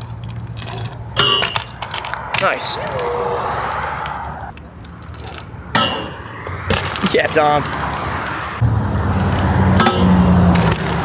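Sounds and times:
bike striking metal rail: 0.8 - 2.0, 5.7 - 7.0, 9.3 - 11.0
car passing: 1.0 - 11.0.

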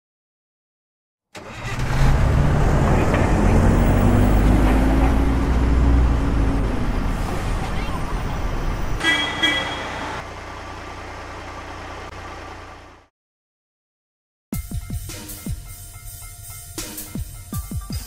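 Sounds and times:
bus engine starting and running: 1.3 - 13.1.

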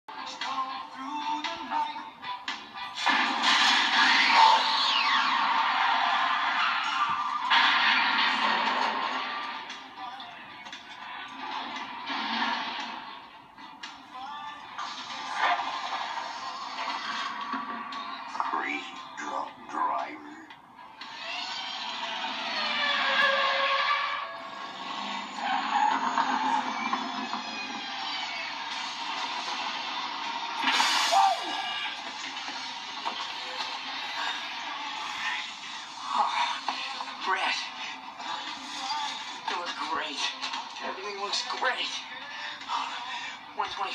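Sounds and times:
background music: 0.1 - 43.9
loud burst of noise: 3.0 - 9.7, 11.3 - 13.4, 21.1 - 36.0
car engine and tyres: 21.1 - 30.6.

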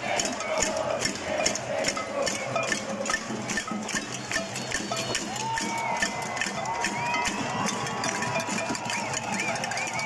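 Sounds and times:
crowd din of many voices: 0.0 - 10.0.

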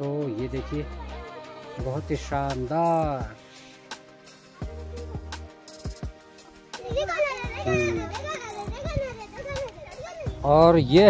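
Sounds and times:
faint background music: 0.0 - 11.0
children calling out and chattering: 4.2 - 10.4.

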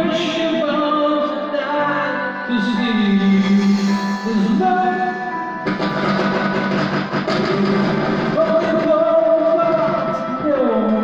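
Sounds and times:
instrumental backing track: 0.0 - 11.0.

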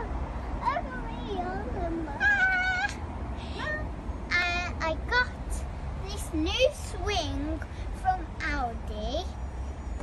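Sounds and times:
girl's wavering vocal sound: 1.4 - 3.9
girl squealing: 2.2 - 3.0.

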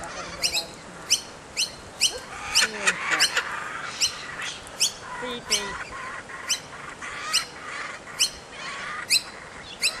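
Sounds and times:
faint bird calling: 0.0 - 10.0
kookaburra begging call: 0.0 - 10.0.

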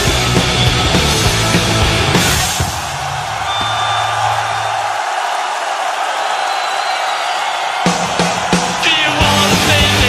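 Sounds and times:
large crowd cheering: 0.0 - 10.0.

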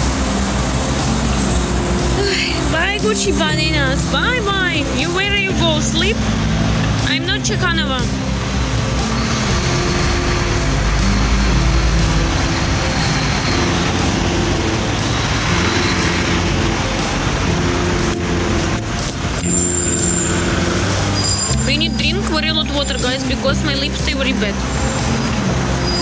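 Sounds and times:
music playing: 0.0 - 26.0
street traffic: 0.0 - 26.0.

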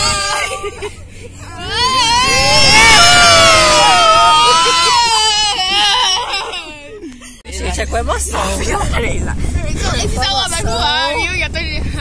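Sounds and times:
person wailing cry: 0.0 - 0.9, 1.6 - 6.8.

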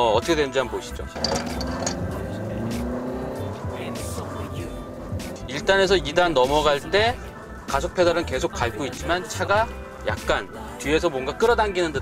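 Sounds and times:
diesel engine from inside car: 2.0 - 5.9.

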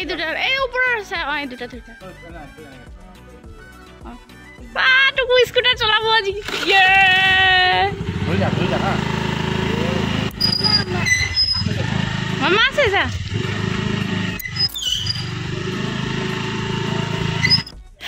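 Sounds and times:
voices talking: 4.0 - 13.3
scooter engine running: 5.8 - 17.8.

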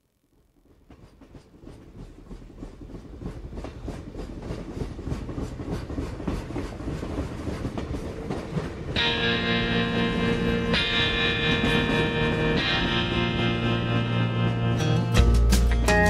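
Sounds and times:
train clickety-clack on rails: 0.4 - 16.0.

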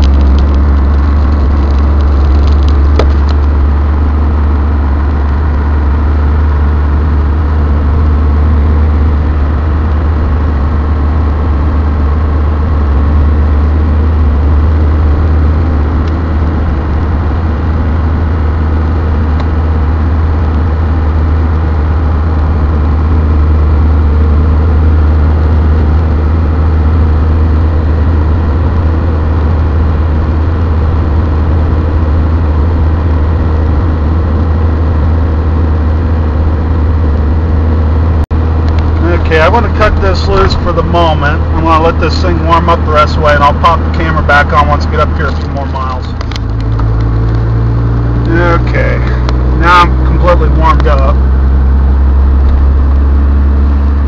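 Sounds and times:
diesel engine cruising: 0.0 - 54.0
road noise: 0.0 - 54.0.

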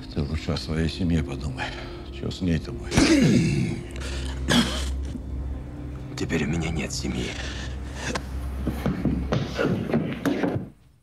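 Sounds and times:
low steady hum: 0.0 - 9.4
bumps and knocks of scuffle: 8.7 - 10.8.

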